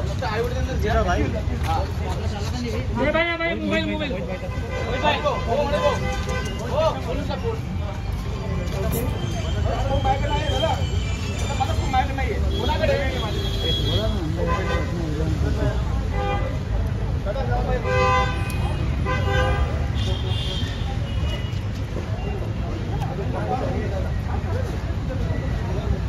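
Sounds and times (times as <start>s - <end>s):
people's voices: 0.0s - 26.0s
street traffic rumble: 0.0s - 26.0s
vehicle horns tooting: 4.4s - 7.5s, 9.0s - 15.0s, 17.8s - 21.6s.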